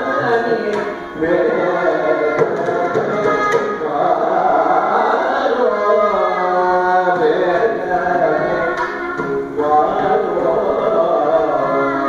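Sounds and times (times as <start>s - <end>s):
man singing: 0.0s - 12.0s
violin accompaniment: 0.0s - 12.0s
hand drum strokes: 2.2s - 4.0s.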